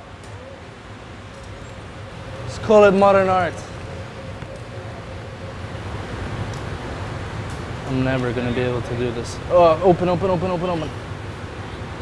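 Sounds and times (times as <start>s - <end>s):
ventilation noise: 0.0s - 12.0s.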